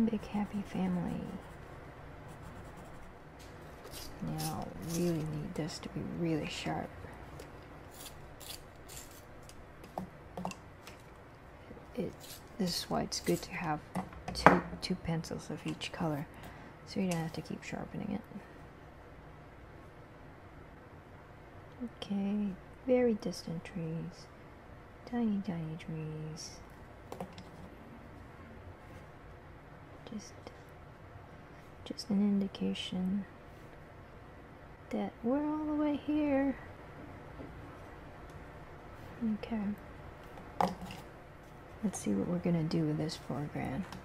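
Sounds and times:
pencil strokes on paper: 0:02.3 - 0:03.1.

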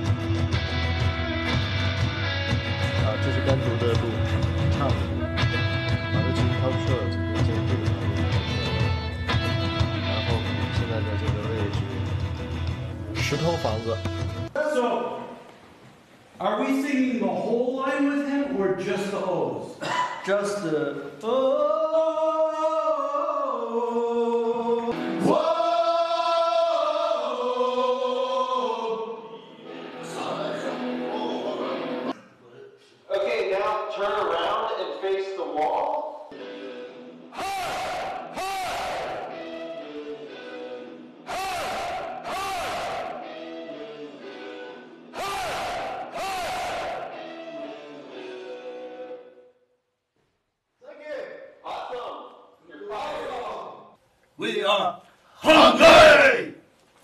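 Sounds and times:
men singing together: 0:21.2 - 0:30.9
men shouting in unison: 0:37.3 - 0:39.4, 0:41.2 - 0:43.4, 0:45.1 - 0:47.4, 0:55.4 - 0:56.6.

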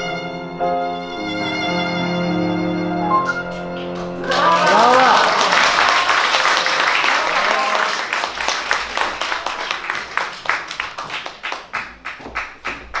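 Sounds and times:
audience applauding: 0:03.2 - 0:13.0.

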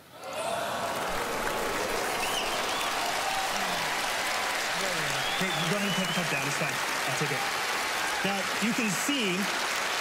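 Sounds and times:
audience applauding: 0:00.0 - 0:10.0
scattered cheers: 0:00.0 - 0:10.0.

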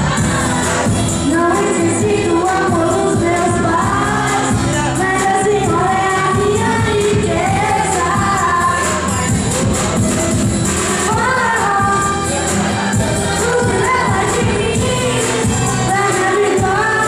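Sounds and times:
backing track through pa: 0:00.0 - 0:17.0
person singing: 0:00.0 - 0:17.0.

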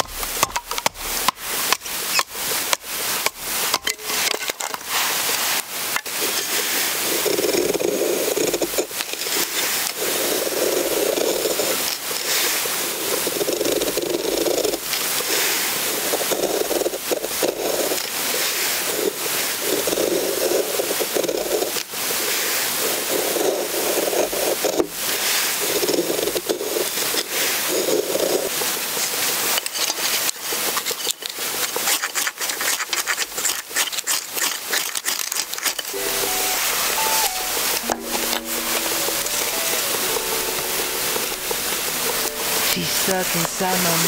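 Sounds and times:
knife scraping wood: 0:29.0 - 0:36.0.

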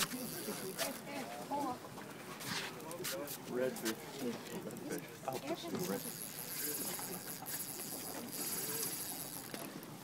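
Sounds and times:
fishing reel ratchet buzzing: 0:00.0 - 0:01.0, 0:05.6 - 0:10.0.

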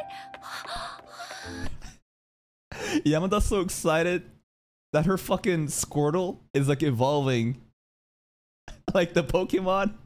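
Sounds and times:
breathy gasping: 0:00.0 - 0:02.0.

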